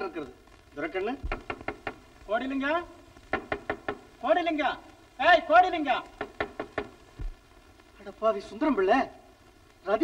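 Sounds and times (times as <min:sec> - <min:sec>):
knocking on a door: 0:01.2 - 0:02.1, 0:03.3 - 0:04.1, 0:06.2 - 0:07.4.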